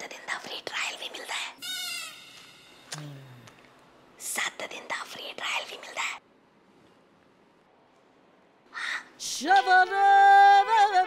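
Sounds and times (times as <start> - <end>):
person whispering rapidly: 4.2 - 6.2.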